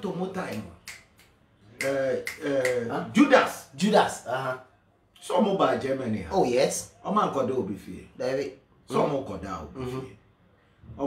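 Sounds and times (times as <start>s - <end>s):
man speaking: 1.7s - 10.2s.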